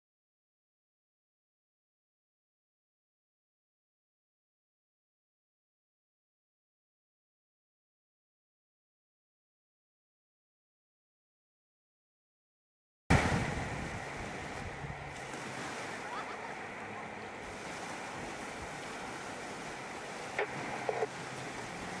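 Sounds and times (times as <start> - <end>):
wind on microphone: 13.1 - 16.4
small waves breaking on beach: 13.1 - 22.0.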